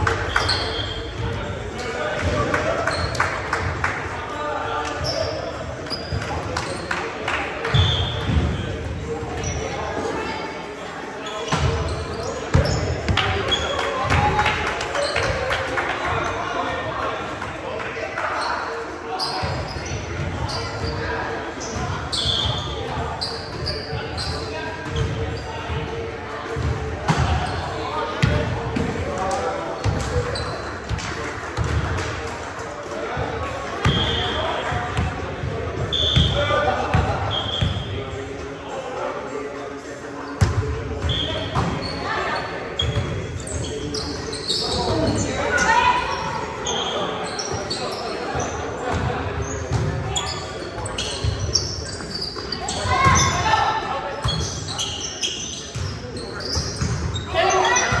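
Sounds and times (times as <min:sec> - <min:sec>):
players shouting and chatting: 0:00.0 - 0:58.0
shoe squeaks: 0:00.3 - 0:01.1, 0:18.5 - 0:25.6, 0:35.9 - 0:36.4, 0:37.3 - 0:37.9, 0:41.0 - 0:53.4, 0:54.1 - 0:58.0.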